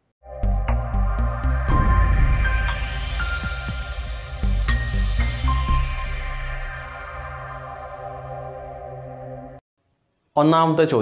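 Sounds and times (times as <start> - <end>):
deep bass line: 0.4 - 8.2.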